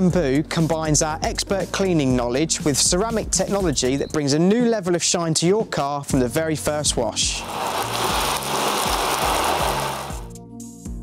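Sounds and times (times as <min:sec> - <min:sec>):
background music with beat: 0:00.0 - 0:04.0, 0:08.1 - 0:11.0
water spray rinsing car: 0:07.2 - 0:10.3.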